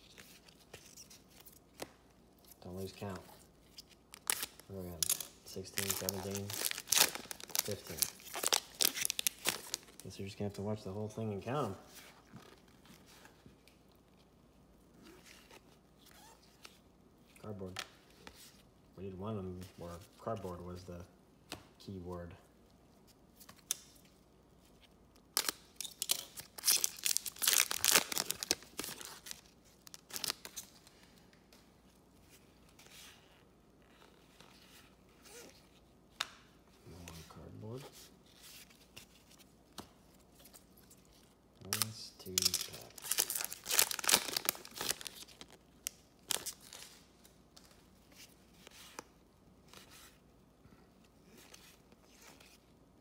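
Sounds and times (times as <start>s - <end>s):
foil wrapper tearing and crinkling: 4.2s - 10.0s, 25.3s - 30.6s, 41.8s - 45.6s.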